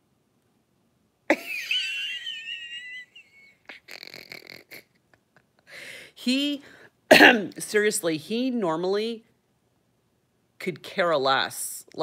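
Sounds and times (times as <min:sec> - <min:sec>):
woman laughing wheezily: 0:01.3 - 0:06.0.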